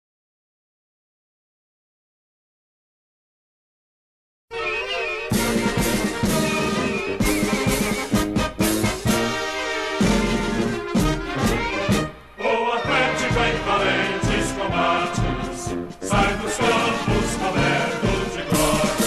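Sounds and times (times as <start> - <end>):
brass and orchestra music: 4.5 - 19.0.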